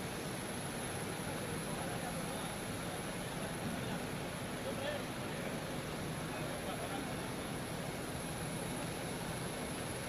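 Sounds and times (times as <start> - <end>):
airliner hum and whine: 0.0 - 10.0.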